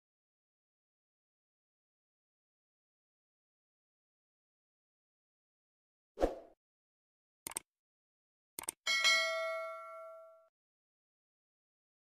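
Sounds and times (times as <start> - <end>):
bright bell ding: 8.9 - 10.5.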